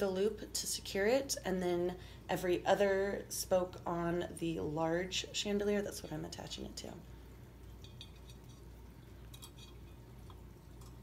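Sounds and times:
low room hum: 0.0 - 11.0
wire frames clinking: 7.8 - 11.0.

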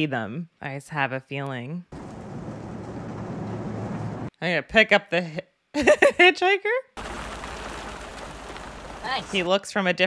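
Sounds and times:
engine and road rumble: 1.9 - 4.3, 7.0 - 9.5.

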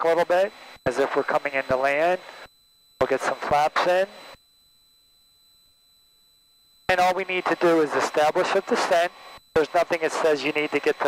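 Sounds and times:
man speaking: 0.0 - 2.2, 3.0 - 4.2, 6.9 - 11.0.

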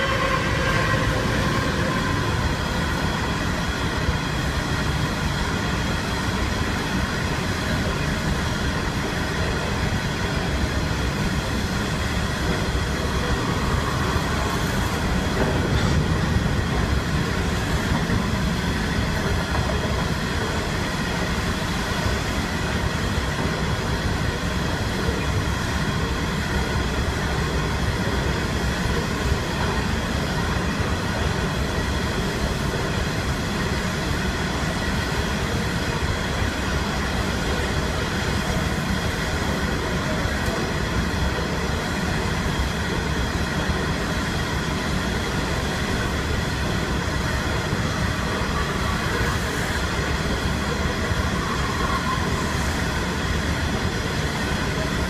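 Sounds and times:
train wagons rumbling on rails: 0.0 - 55.0.

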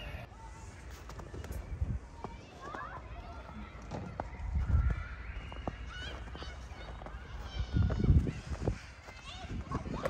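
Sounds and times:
low wind rumble on microphone: 1.3 - 2.4, 4.3 - 5.6, 6.8 - 10.0.

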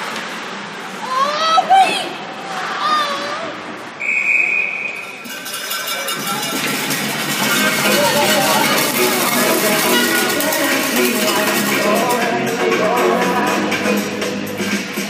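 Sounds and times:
referee's whistle: 4.0 - 5.3
arena music over loudspeakers: 6.1 - 15.0.

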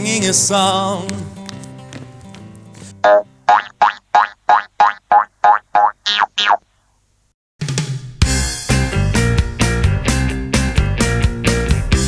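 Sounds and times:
cartoon sound effect blips: 3.0 - 6.6.

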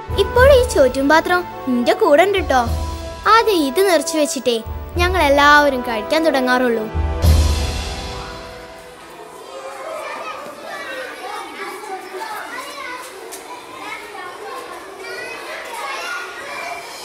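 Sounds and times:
children chattering: 0.0 - 6.9, 8.0 - 17.0.

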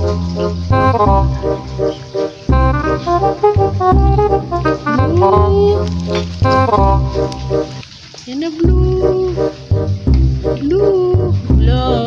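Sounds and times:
melody over heavy bass beat: 0.0 - 1.9, 2.5 - 7.6.

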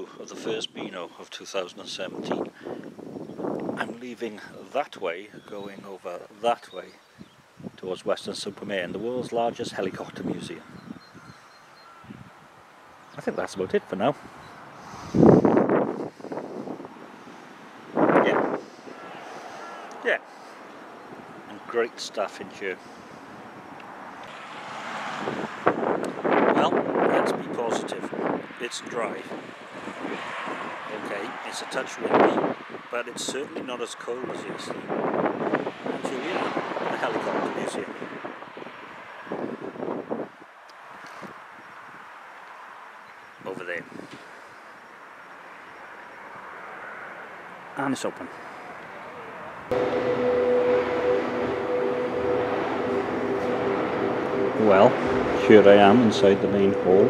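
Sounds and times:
road traffic passing: 0.0 - 0.8, 1.6 - 7.8, 9.8 - 57.0
faint outdoor air: 0.0 - 57.0
wind buffeting microphone: 1.8 - 4.6, 7.2 - 11.4, 12.0 - 19.2, 25.0 - 32.9, 34.2 - 40.5.

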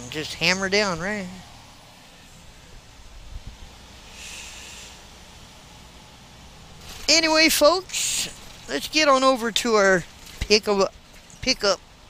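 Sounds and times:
truck road and engine rumble: 0.0 - 12.0
brief hiss: 4.0 - 5.1.

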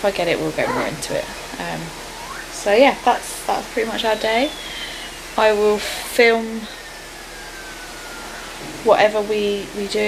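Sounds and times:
woman speaking: 0.0 - 6.8, 8.8 - 10.0
background hiss: 0.0 - 10.0
faint falling tone: 0.3 - 10.0.

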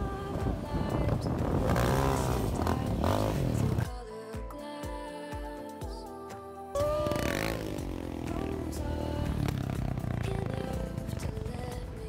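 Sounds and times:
quad bike engine revving: 0.7 - 3.9, 6.8 - 12.0.

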